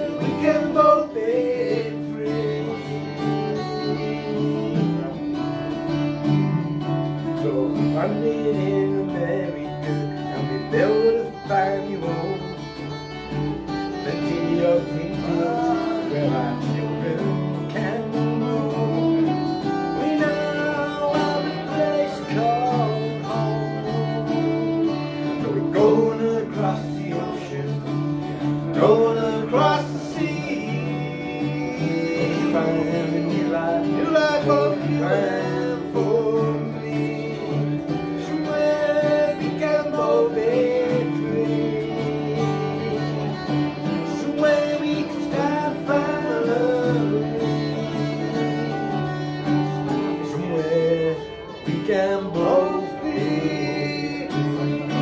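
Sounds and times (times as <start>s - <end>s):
acoustic guitars strumming: 0.0s - 55.0s
man singing: 0.0s - 55.0s.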